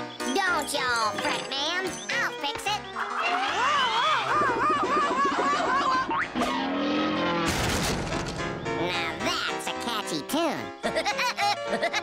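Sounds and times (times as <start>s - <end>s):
lively cartoon music: 0.0s - 12.0s
short crash: 6.4s - 8.5s.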